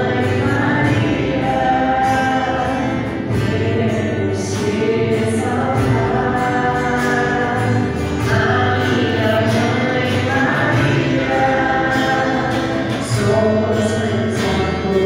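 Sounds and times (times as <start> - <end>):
choir singing a hymn: 0.0 - 15.0.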